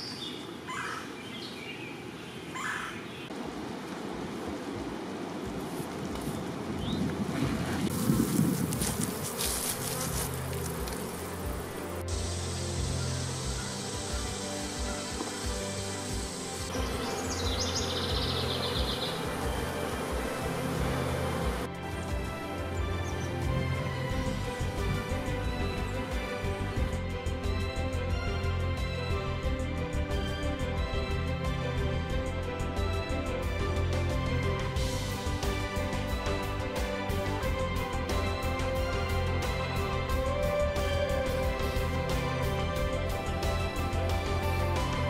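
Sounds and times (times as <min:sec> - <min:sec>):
honeybees buzzing: 0:07.9 - 0:26.8.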